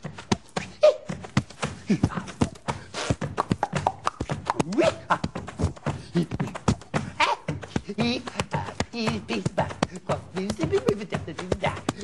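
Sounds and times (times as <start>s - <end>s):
hands slapping chest and thighs: 0.0s - 12.0s.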